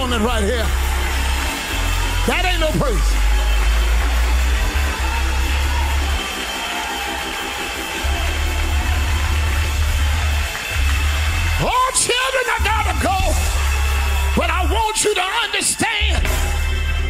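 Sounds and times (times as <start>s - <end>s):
congregation clapping: 0.0s - 16.4s
church band music: 0.0s - 17.0s.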